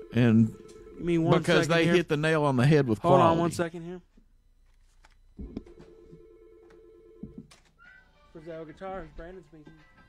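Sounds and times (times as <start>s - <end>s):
faint telephone ringing: 0.0s - 8.4s.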